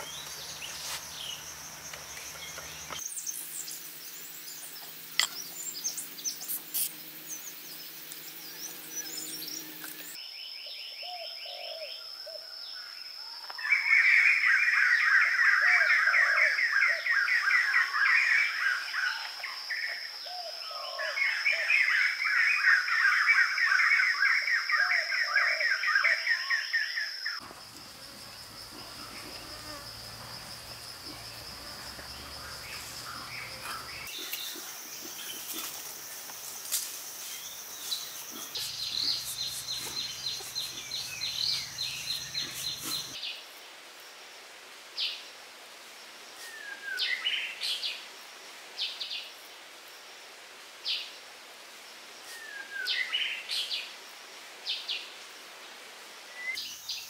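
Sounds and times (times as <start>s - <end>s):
high insect drone: 0.0s - 10.2s, 27.2s - 43.2s.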